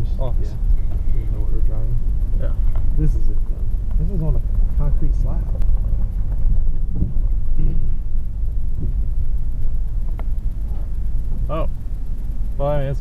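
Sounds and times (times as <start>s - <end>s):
car engine and tyres rumbling: 0.0s - 13.0s.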